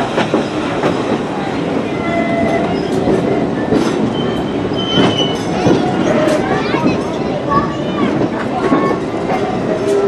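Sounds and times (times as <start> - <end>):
train wheels rumbling on rail: 0.0 - 10.0.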